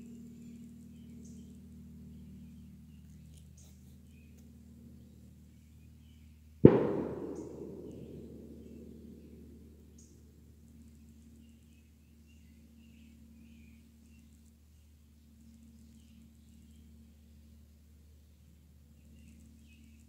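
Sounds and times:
sharp bang with echo: 6.6s - 9.5s.

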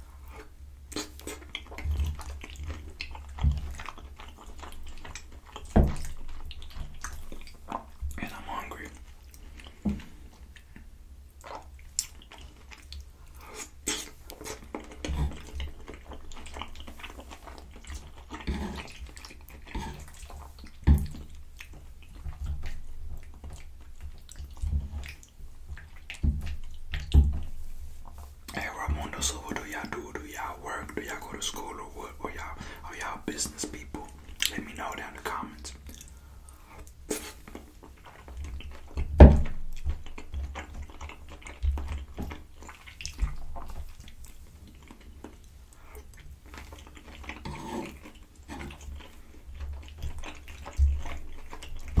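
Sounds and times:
wet chewing: 0.0s - 52.0s
mouth smacks and clicks: 0.2s - 52.0s.

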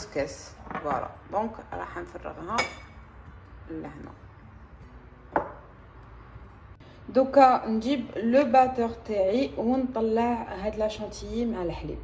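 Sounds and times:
glass knocking on hard surface: 5.3s - 5.7s.

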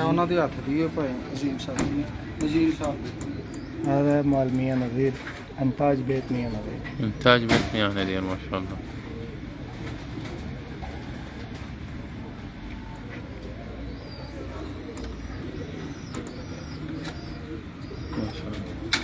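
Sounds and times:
pigeons cooing: 0.0s - 19.0s.

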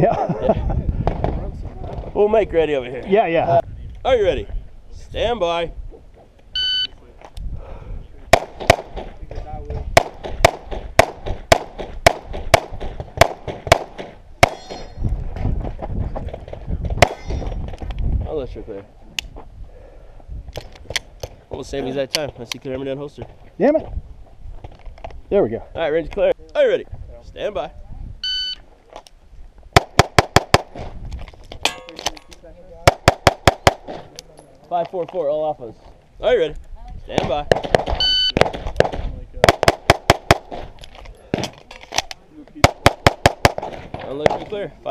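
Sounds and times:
pistol shots: 8.3s - 9.1s, 10.0s - 14.8s, 29.8s - 30.9s, 32.9s - 34.1s, 37.2s - 40.7s, 42.6s - 44.4s
shot timer beep: 28.2s - 28.6s.

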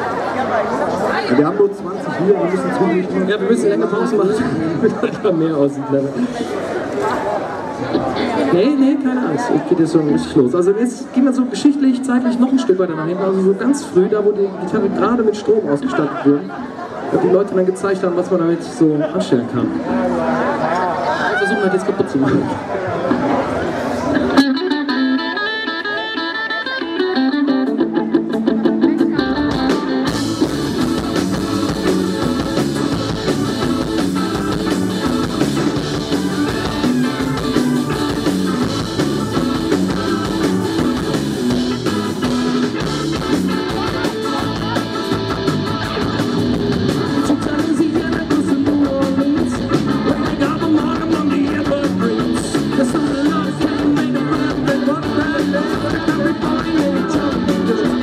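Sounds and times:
bass guitar: 19.6s - 58.0s
electric guitar: 19.7s - 58.0s
drums with cymbals: 29.0s - 58.0s.

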